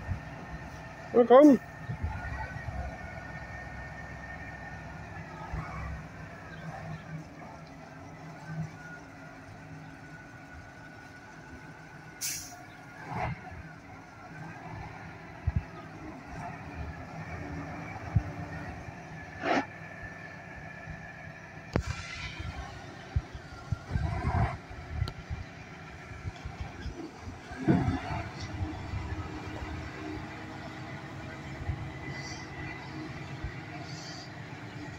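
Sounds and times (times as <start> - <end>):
truck engine low rumble: 0.0 - 34.9
air brake hiss: 12.2 - 12.6, 21.8 - 22.6.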